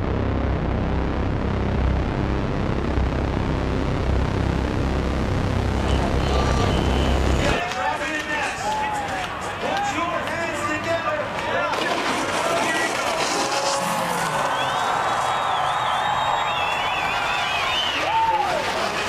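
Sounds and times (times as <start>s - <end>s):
rumbling soundtrack with bass drone: 0.0s - 7.7s.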